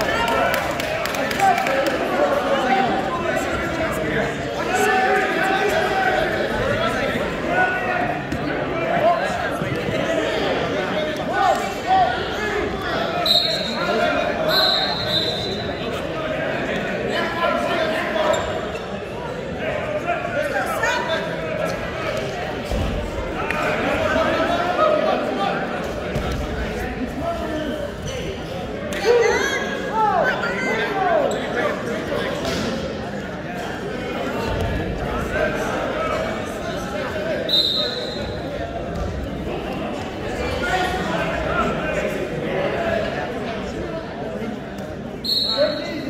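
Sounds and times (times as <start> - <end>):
voices talking and calling out: 0.0 - 46.0.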